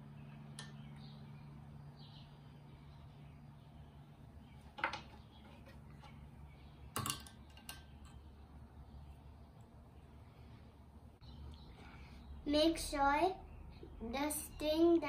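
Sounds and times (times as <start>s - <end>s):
faint room hum: 0.0s - 15.0s.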